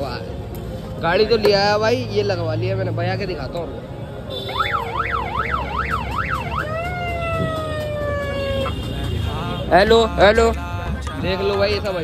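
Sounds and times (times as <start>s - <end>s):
electronic siren yelping: 4.5s - 8.7s.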